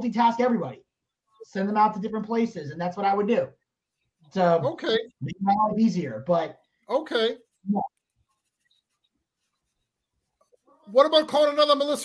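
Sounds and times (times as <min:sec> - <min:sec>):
person speaking: 0:00.0 - 0:03.6, 0:04.3 - 0:09.0.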